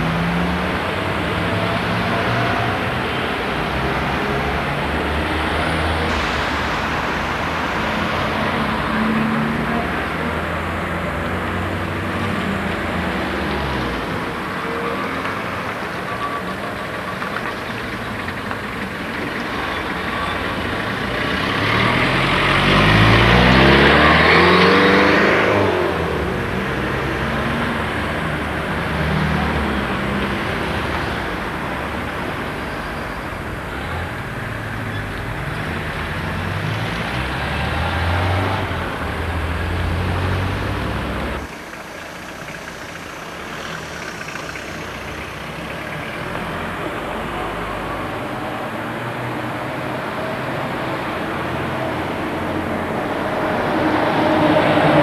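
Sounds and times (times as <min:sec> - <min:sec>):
car engines running: 0:00.0 - 0:55.0
car pulling away and speeding up: 0:00.0 - 0:55.0.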